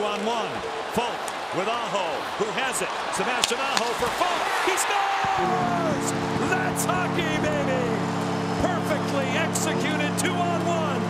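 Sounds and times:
crowd cheering: 0.0 - 11.0
arena goal horn blaring: 4.8 - 11.0.

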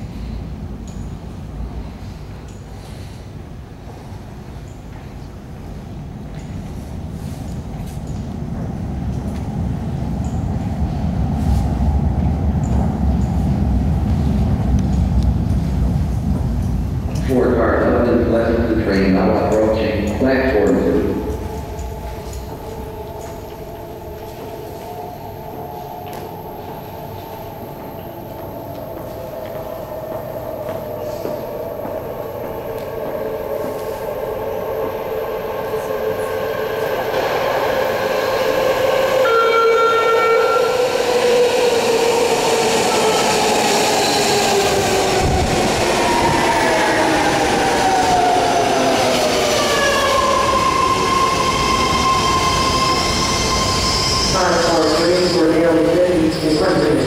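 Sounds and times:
train rumbling in a tunnel: 0.0 - 57.0
train whine falling in pitch: 19.2 - 57.0.

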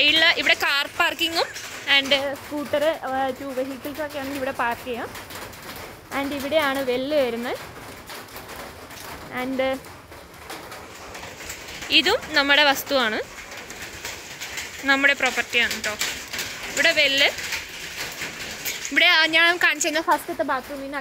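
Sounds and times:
woman speaking: 0.0 - 5.1, 6.1 - 7.6, 9.3 - 9.8, 11.8 - 13.3, 14.8 - 16.1, 16.7 - 17.4, 18.7 - 21.0.

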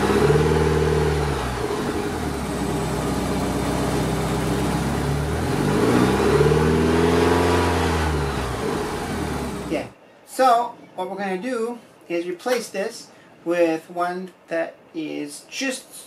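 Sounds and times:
car engine revving: 0.0 - 9.9.

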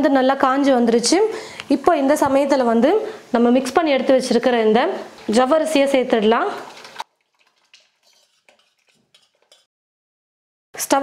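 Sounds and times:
paste pouring into water: 6.4 - 9.7.

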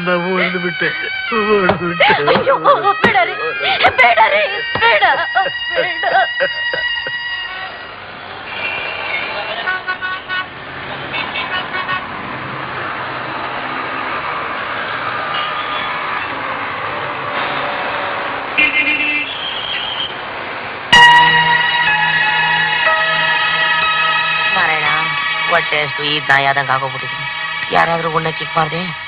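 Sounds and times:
loud music: 0.0 - 7.8, 21.0 - 26.0
vehicle horns tooting: 0.0 - 12.3, 15.3 - 16.4, 17.4 - 20.2, 20.9 - 28.1
traffic rumble: 0.0 - 29.0.

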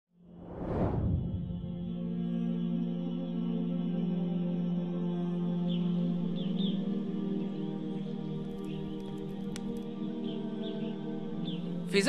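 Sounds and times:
intro whoosh: 0.4 - 2.2
low musical drone: 1.2 - 12.0.

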